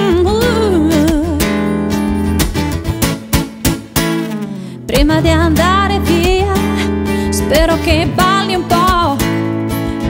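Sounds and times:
woman singing: 0:00.0 - 0:02.2, 0:04.8 - 0:10.0
acoustic guitar strumming: 0:00.0 - 0:10.0.

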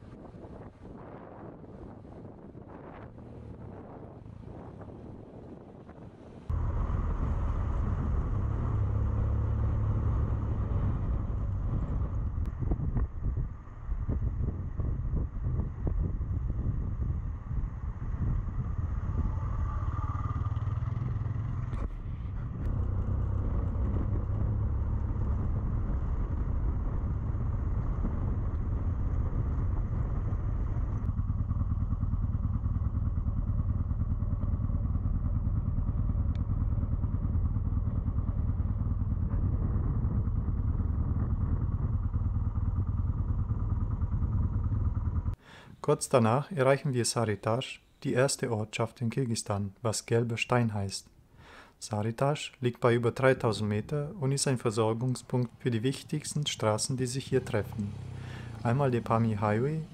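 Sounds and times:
motorcycle engine running: 0:06.5 - 0:45.4, 0:57.2 - 0:59.9
knocks and clatter from rough track: 0:34.1 - 0:45.4.

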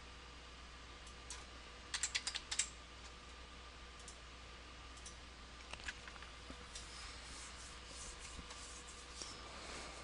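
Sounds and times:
keyboard typing: 0:01.9 - 0:02.7.

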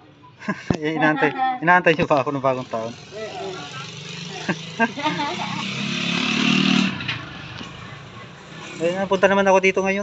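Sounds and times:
small engine running: 0:02.4 - 0:07.2.

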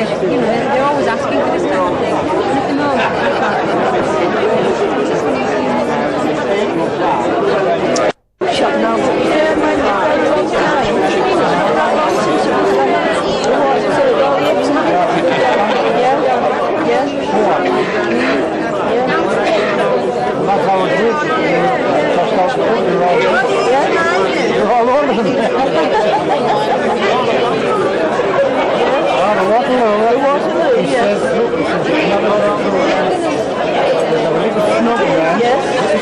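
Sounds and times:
hubbub of diners talking: 0:00.0 - 0:36.0.

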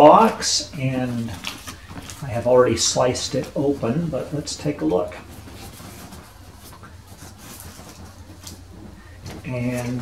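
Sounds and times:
faint rustling: 0:00.0 - 0:10.0
cardboard box flaps scraping: 0:01.1 - 0:10.0.

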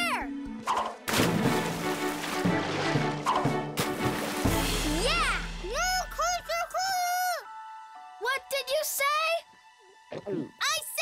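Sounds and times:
background music: 0:00.0 - 0:11.0
large water splash: 0:01.1 - 0:05.5.

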